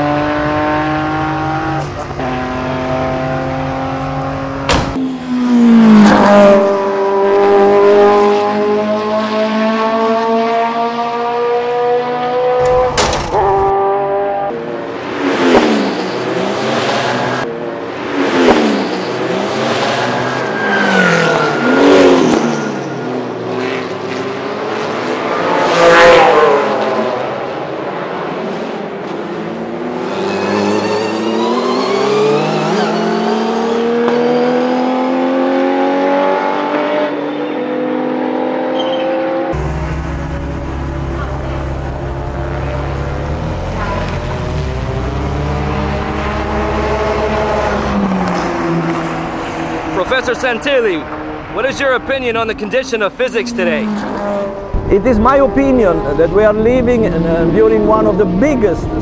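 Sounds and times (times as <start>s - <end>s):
car engine accelerating hard: 0.0s - 59.0s.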